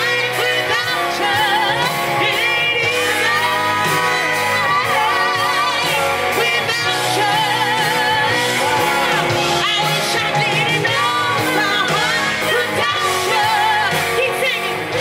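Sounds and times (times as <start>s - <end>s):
live band playing: 0.0s - 15.0s
woman singing with vibrato: 0.0s - 15.0s.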